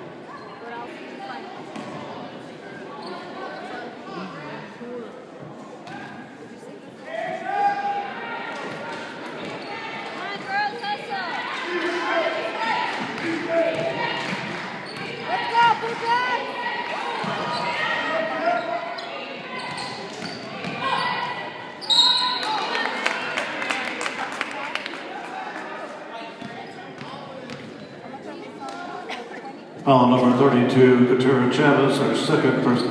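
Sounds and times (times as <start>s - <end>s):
referee's whistle: 21.8s - 22.5s.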